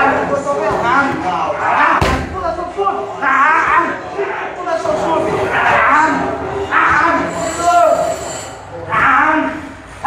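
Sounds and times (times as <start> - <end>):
kick smacking a pad: 2.0 - 2.4.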